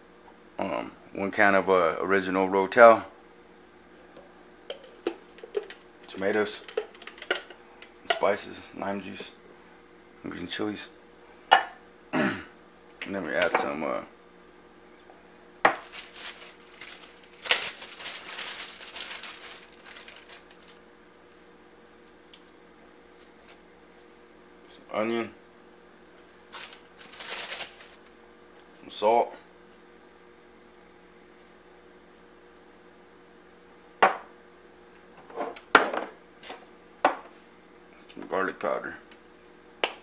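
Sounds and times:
plastic bag crinkling: 15.8s - 21.4s, 26.5s - 28.1s.

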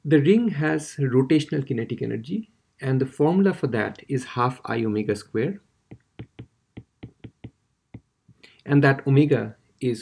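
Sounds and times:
stylus tapping on glass screen: 5.9s - 8.4s.

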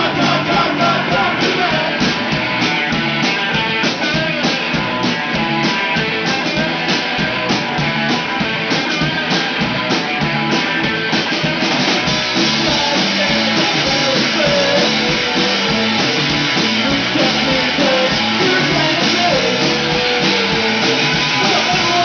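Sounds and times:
drum kit beat: 0.0s - 22.0s
electric guitars: 0.0s - 22.0s.

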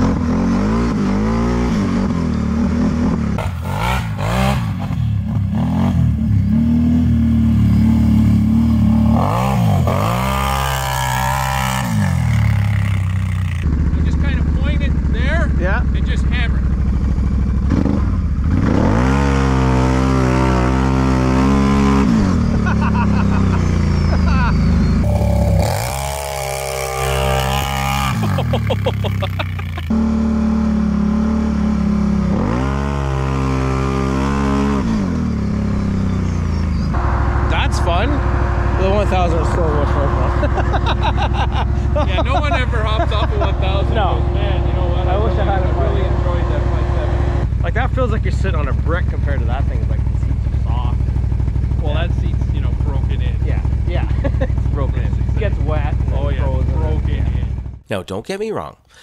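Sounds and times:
quad bike engine revving: 0.0s - 57.9s.

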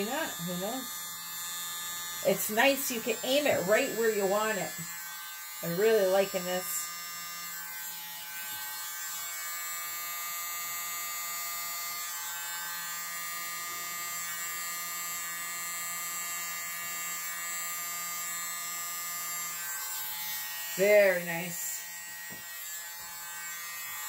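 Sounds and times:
electric mini blower whining: 0.0s - 8.8s.

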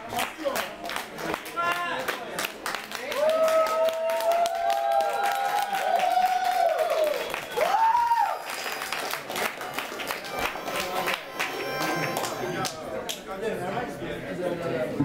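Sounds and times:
audience applauding: 0.0s - 13.2s
people cheering: 3.0s - 12.8s
person whooping: 3.3s - 8.6s.

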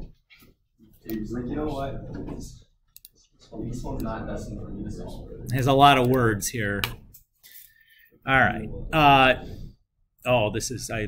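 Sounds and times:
man talking: 1.0s - 2.7s, 3.5s - 7.0s, 8.2s - 11.0s.

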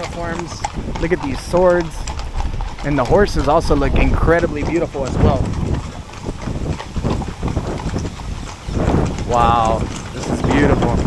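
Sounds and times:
horse hooves on cobblestones: 0.0s - 11.0s.

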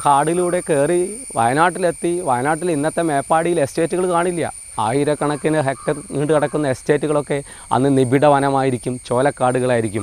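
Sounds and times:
high-pitched insect drone: 0.0s - 10.0s
man talking: 0.0s - 10.0s.

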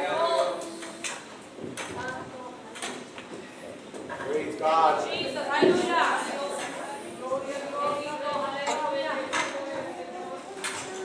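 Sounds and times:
murmured speech: 5.0s - 11.0s.

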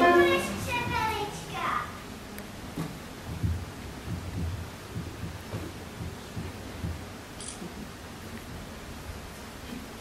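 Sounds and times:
children's footsteps on wooden stage: 0.0s - 1.4s, 2.7s - 8.9s
faint hall hiss: 0.0s - 10.0s
low thumps: 2.6s - 7.8s.

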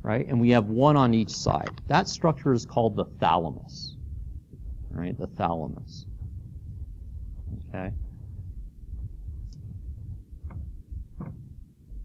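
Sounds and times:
low muffled thudding and rumble: 0.8s - 12.0s.

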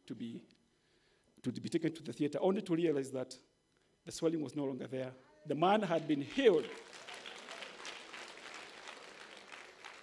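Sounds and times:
congregation clapping: 5.8s - 10.0s.

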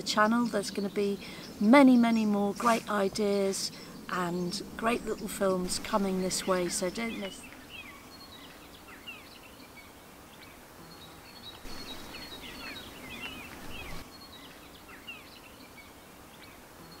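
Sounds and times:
soft background hiss: 0.0s - 17.0s
songbirds chirping and singing: 0.0s - 17.0s.

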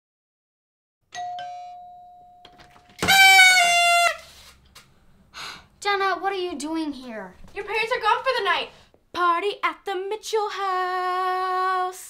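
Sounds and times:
two-note doorbell chime: 1.1s - 2.8s
buzzy party horn: 3.0s - 4.6s.

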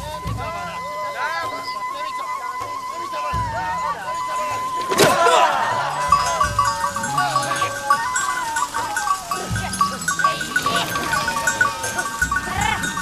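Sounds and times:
high chirping pips: 4.1s - 13.0s
sheep and goats bleating: 5.2s - 13.0s.

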